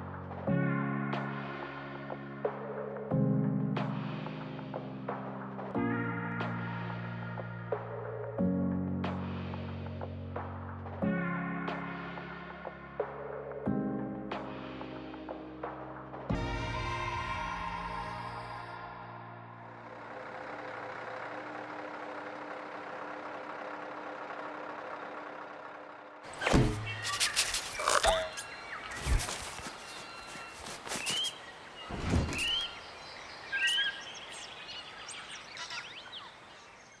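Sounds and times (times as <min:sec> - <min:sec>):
truck engine idling: 0:19.7 - 0:31.8
sharp thuds: 0:26.3 - 0:27.7
rising bird-like chirps: 0:26.4 - 0:36.4.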